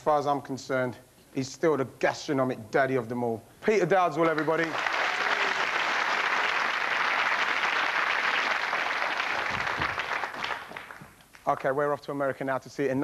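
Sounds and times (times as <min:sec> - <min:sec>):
audience applauding: 0:04.2 - 0:11.2.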